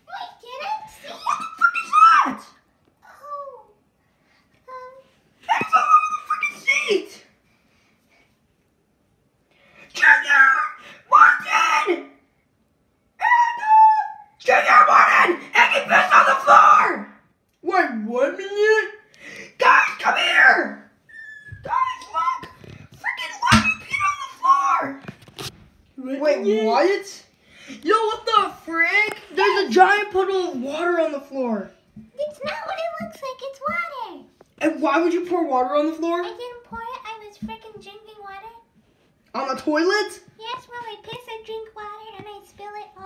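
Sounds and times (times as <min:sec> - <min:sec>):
high-pitched voices screaming: 0:01.0 - 0:02.6, 0:10.0 - 0:12.1, 0:13.2 - 0:17.1, 0:19.6 - 0:25.0.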